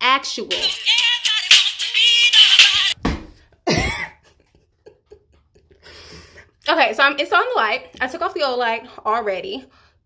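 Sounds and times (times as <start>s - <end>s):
woman coughing: 3.6s - 4.2s.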